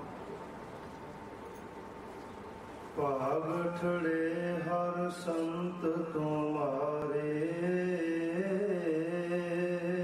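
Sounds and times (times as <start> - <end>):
man chanting: 3.0 - 10.0.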